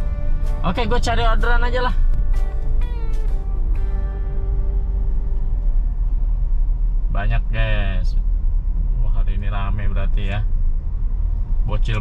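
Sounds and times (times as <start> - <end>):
road and engine rumble in car cabin: 0.0 - 12.0.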